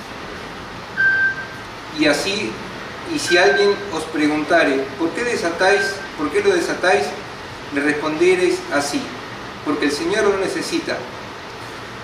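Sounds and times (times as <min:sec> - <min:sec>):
background hiss: 0:00.0 - 0:12.0
thin high tone: 0:01.0 - 0:01.6, 0:03.2 - 0:03.9, 0:05.6 - 0:06.2.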